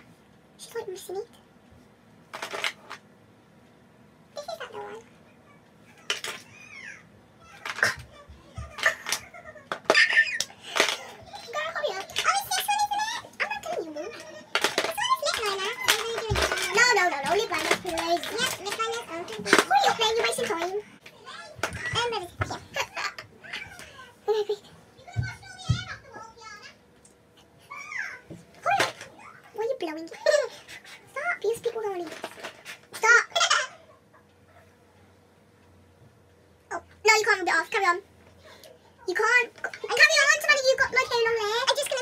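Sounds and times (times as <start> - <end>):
girls talking: 10.2 - 26.8, 36.7 - 42.0.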